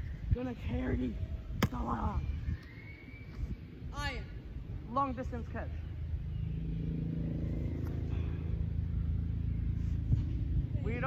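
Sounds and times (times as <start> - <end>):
low mechanical drone: 1.1 - 11.0.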